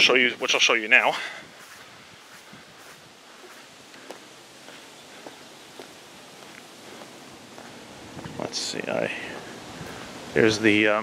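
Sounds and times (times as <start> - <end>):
faint footsteps: 0.0 - 10.6
steady outdoor hiss: 0.0 - 11.0.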